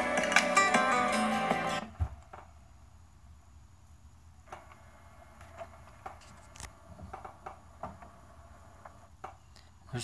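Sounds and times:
guitar music: 0:00.0 - 0:01.9.

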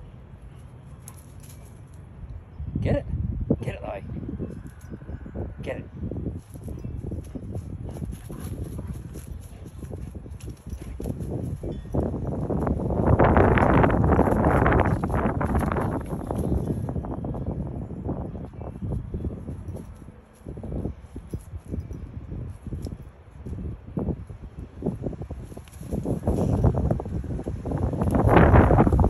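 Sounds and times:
wind noise on microphone: 0:01.0 - 0:29.0.

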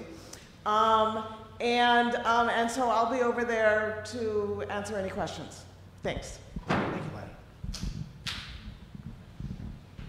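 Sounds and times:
microphone handling rustles: 0:06.5 - 0:10.0.

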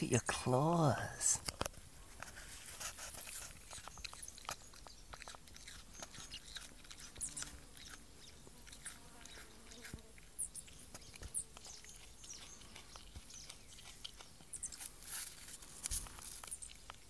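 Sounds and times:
animal chewing apple: 0:00.0 - 0:17.0.

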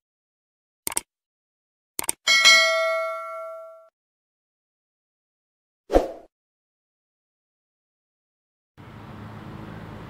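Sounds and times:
quick double click: 0:00.9 - 0:01.1, 0:02.0 - 0:02.2
notification bell ding: 0:02.3 - 0:03.9.

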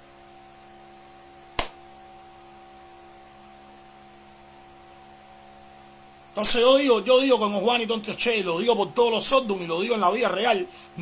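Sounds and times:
steady electrical hum: 0:00.0 - 0:11.0
sharp click: 0:01.6 - 0:01.8.

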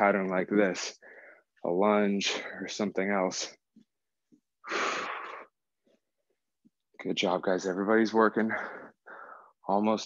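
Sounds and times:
man exhaling hard: 0:04.6 - 0:05.5.

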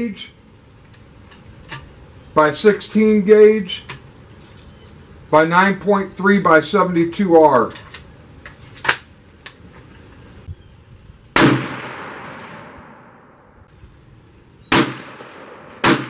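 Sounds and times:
gunshots: 0:11.4 - 0:13.3, 0:14.7 - 0:16.0.

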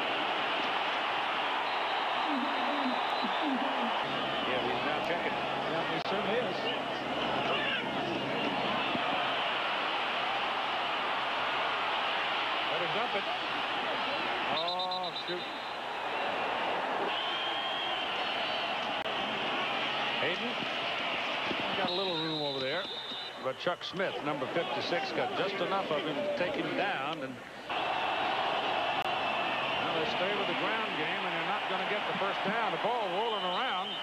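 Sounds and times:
stadium crowd noise: 0:00.0 - 0:34.0.

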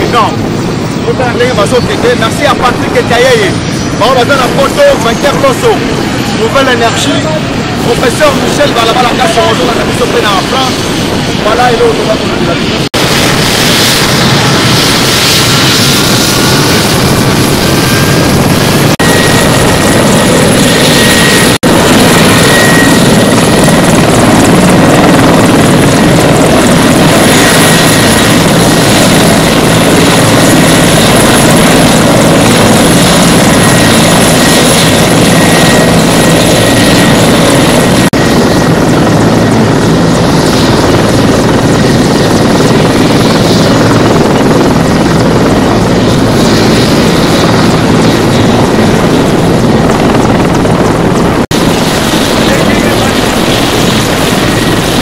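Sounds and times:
helicopter turbine and rotor noise: 0:00.0 - 0:55.0.

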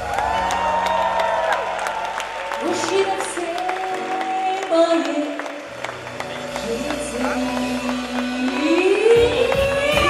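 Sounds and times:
female singer: 0:02.6 - 0:05.6, 0:06.5 - 0:10.0
live band with drums: 0:05.9 - 0:10.0.

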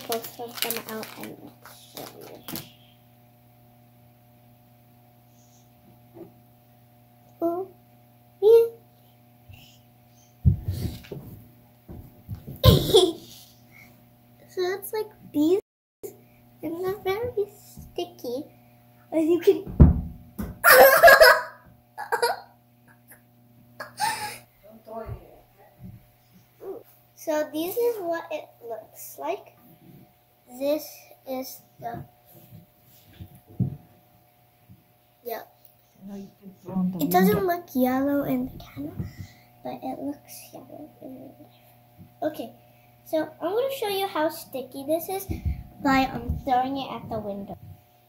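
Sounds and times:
plastic package crinkling: 0:00.0 - 0:02.8
faint steady hum: 0:00.0 - 0:48.0
girl squealing with laughter: 0:20.6 - 0:22.5.

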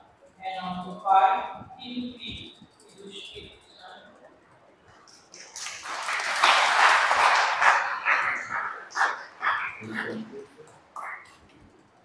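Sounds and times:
congregation applauding: 0:05.3 - 0:10.4.

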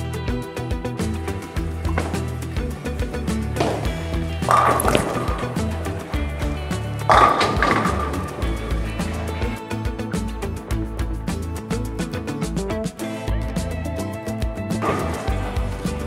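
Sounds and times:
background music: 0:00.0 - 0:16.0
bowling ball rolling on lane: 0:01.9 - 0:09.6
bowling pins crashing: 0:03.4 - 0:09.5, 0:14.8 - 0:16.0.

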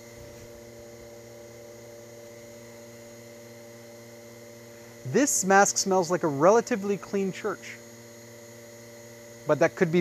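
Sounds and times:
faint low electrical hum: 0:00.0 - 0:10.0.

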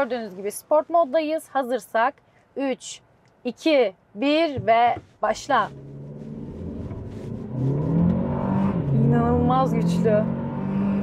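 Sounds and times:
car engine accelerating: 0:05.5 - 0:11.0.

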